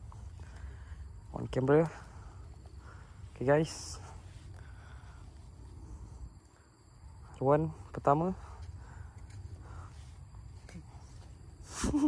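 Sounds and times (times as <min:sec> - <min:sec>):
steady low rumble: 0:00.0 - 0:11.6.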